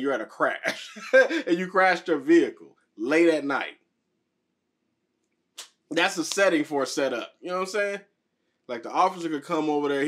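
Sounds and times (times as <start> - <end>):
man speaking: 0.0 - 3.7, 5.9 - 8.0, 8.7 - 10.0.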